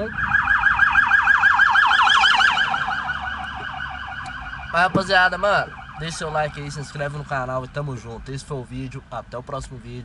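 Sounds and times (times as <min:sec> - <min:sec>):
electronic alarm siren warbling: 0:00.0 - 0:06.5.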